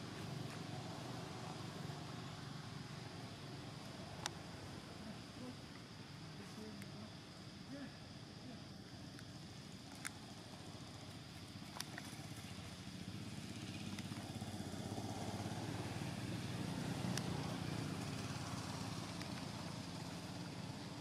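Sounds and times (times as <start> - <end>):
vehicle engine passing: 12.5 - 20.8.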